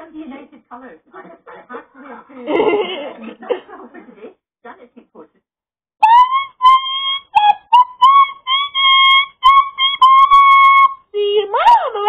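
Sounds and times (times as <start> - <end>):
loud staccato whistled notes: 6.0 - 11.0
swooping low whistle: 6.0 - 11.0.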